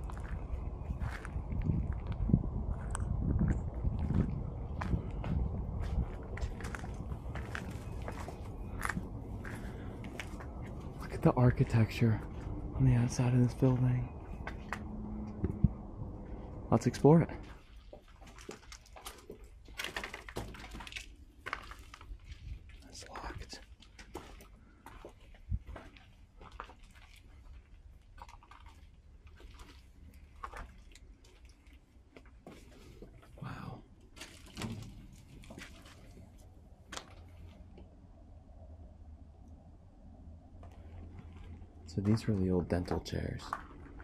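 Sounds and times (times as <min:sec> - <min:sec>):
footsteps crunching on debris: 0:00.0 - 0:12.6, 0:17.3 - 0:23.0, 0:23.7 - 0:37.7, 0:40.6 - 0:44.0.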